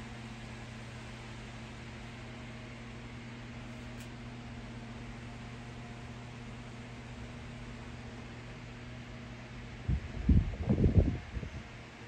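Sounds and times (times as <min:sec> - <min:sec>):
electric fans running: 0:00.0 - 0:12.0.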